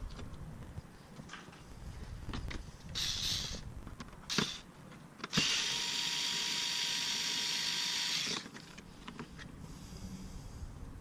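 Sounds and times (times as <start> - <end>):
cordless screwdriver motor running: 3.0 - 3.6, 4.3 - 4.6, 5.3 - 8.5.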